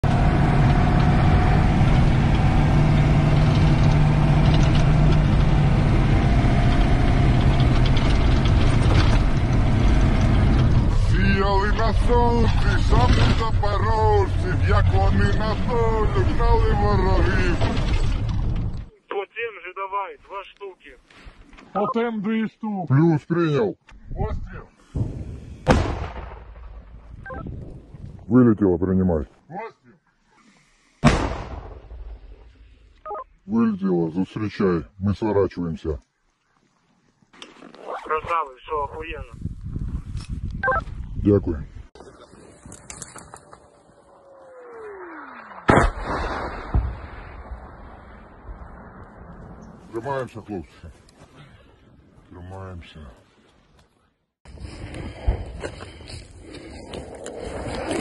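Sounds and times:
vehicle engine and road noise: 0:00.0 - 0:18.9
mortar shot rumble: 0:25.0 - 0:27.1, 0:31.0 - 0:32.5, 0:45.5 - 0:49.8
electronic beep: 0:27.2 - 0:27.5, 0:40.6 - 0:40.8.

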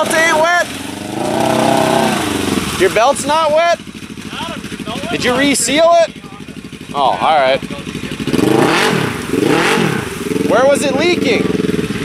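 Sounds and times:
engine revving: 0:00.0 - 0:12.0
tires spinning in mud: 0:00.0 - 0:12.0.

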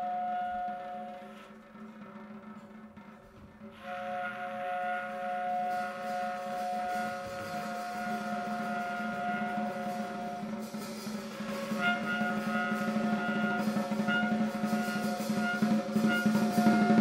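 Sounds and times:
cymbal wash: 0:00.0 - 0:02.4, 0:03.8 - 0:17.0
quiet drumming: 0:00.0 - 0:17.0
tenor saxophone long note: 0:03.8 - 0:17.0.

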